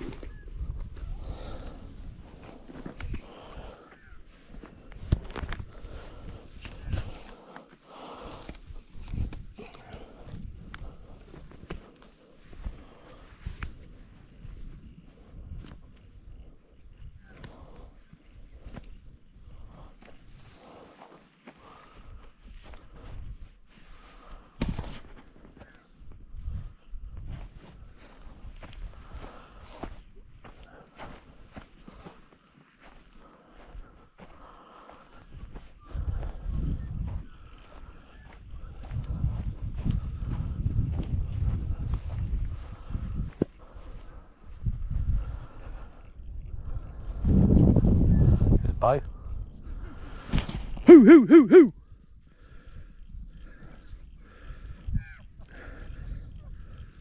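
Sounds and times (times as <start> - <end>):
footsteps in dry grass: 0.0 - 47.5.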